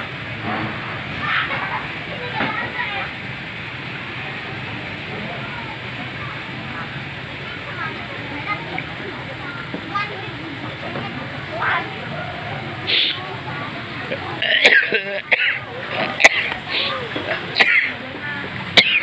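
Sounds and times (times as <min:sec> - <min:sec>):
people talking at a distance: 0:00.0 - 0:19.0
steady background noise: 0:00.0 - 0:19.0.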